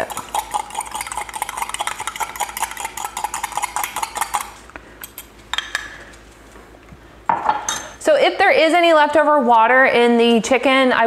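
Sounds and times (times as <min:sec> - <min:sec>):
spoon clinking against glass: 0:00.0 - 0:05.7.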